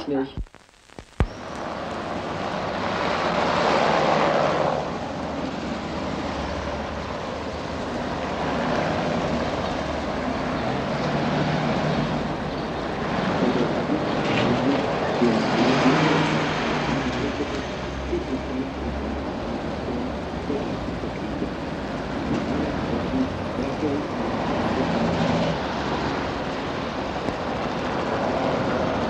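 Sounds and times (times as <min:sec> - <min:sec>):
cars passing over cobblestones: 0:01.3 - 0:29.0.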